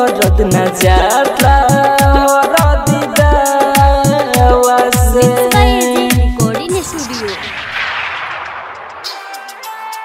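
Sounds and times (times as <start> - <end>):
rushing whoosh effect: 6.8 - 9.8.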